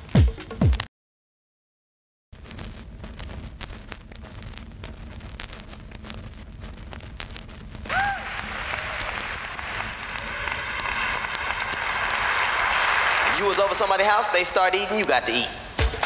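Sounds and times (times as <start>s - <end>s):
low rumble: 2.4s - 12.8s
vinyl clicks and pops: 2.4s - 13.9s
whoop: 7.9s - 13.2s
crowd applauding and cheering: 7.9s - 14.1s.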